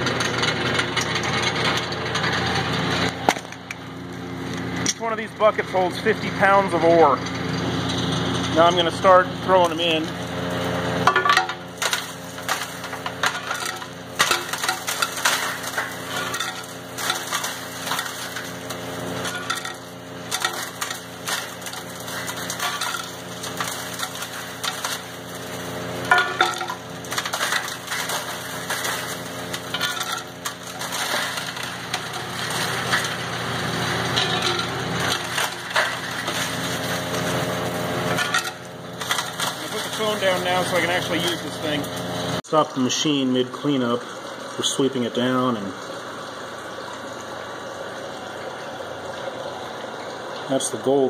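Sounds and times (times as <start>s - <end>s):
ore chunks knocking in mill: 0.0s - 42.2s
machinery humming: 0.0s - 51.0s.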